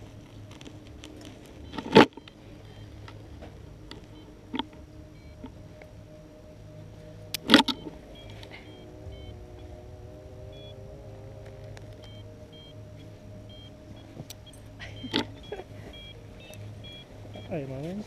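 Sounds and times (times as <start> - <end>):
steady low hum: 0.0 - 18.0
faint short high beeps: 13.5 - 17.6.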